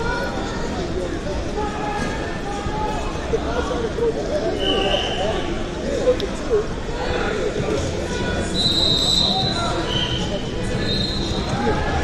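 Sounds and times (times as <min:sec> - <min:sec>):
hubbub of many voices: 0:00.0 - 0:12.0.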